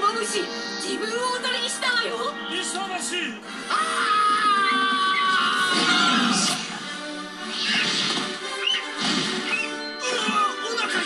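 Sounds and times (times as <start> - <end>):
film score music: 0.0 - 11.0
cartoon bird squawks: 7.5 - 9.8.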